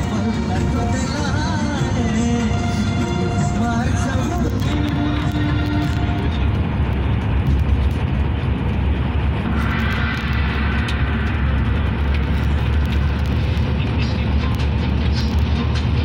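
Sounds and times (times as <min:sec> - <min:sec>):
coach engine drone: 0:00.0 - 0:16.0
road noise: 0:00.0 - 0:16.0.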